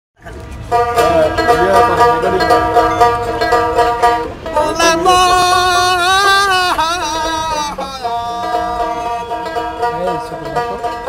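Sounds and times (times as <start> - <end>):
plucked long-necked lute: 0.2 - 11.0
man singing: 4.5 - 9.8.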